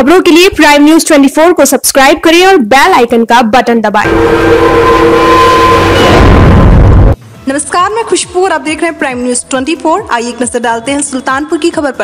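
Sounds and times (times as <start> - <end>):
loud rushing whoosh: 4.0 - 7.2
steady held tones: 4.0 - 7.2.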